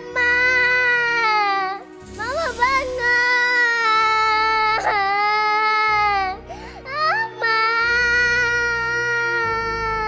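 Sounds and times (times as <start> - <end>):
girl sobbing: 0.0 - 10.0.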